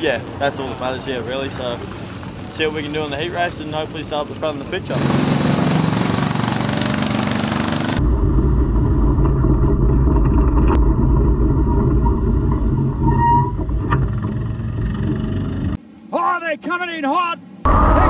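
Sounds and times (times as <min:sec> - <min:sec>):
vehicle engine with hiss: 0:00.6 - 0:05.7
muffled engine low rumble: 0:08.0 - 0:15.8.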